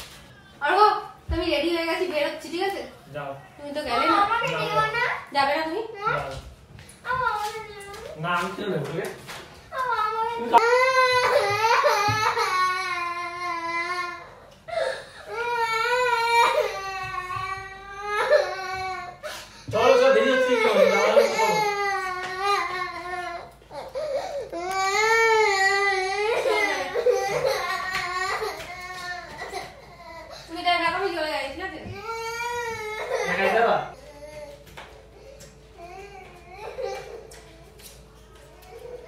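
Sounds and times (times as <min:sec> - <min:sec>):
boy crying: 0:20.0 - 0:30.3.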